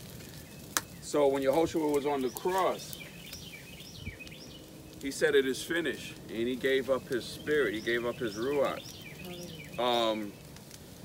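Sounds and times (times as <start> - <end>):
quiet outdoor background noise: 0.0 - 11.0
faint bird chirps: 6.9 - 10.5.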